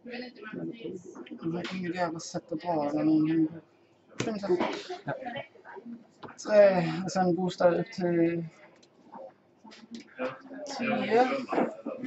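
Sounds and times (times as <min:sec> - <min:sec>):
quiet talk: 0:00.0 - 0:12.0.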